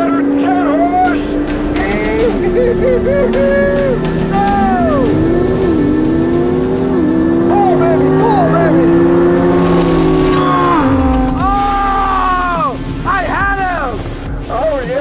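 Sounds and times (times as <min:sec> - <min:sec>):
background music: 0:00.0 - 0:15.0
car engine at full throttle: 0:00.0 - 0:15.0.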